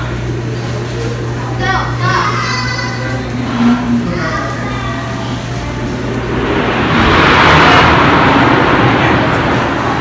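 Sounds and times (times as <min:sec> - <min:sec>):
steady low hum: 0:00.0 - 0:10.0
rushing noise: 0:03.0 - 0:10.0.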